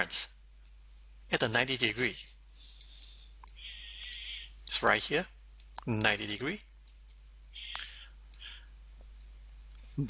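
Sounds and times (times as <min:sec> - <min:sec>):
low steady hum: 0:00.0 - 0:10.0
computer mouse click: 0:05.6 - 0:06.2, 0:06.9 - 0:08.5.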